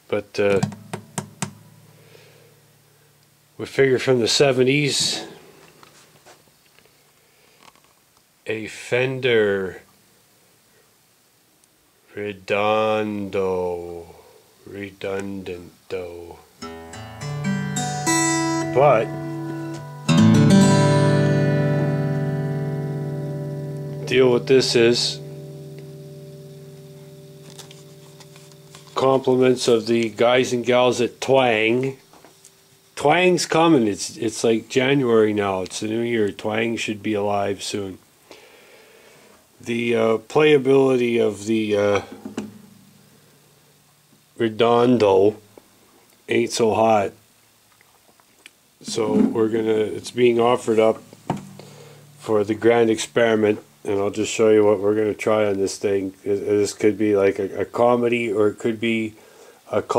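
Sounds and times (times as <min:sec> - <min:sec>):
acoustic guitar strings ringing: 0:00.5 - 0:03.2, 0:16.6 - 0:31.8, 0:41.9 - 0:43.3, 0:48.9 - 0:54.0
faint low hum: 0:08.4 - 0:59.9.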